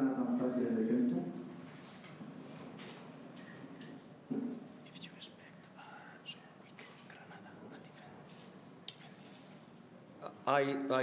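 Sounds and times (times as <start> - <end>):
person whispering: 4.8 - 8.2.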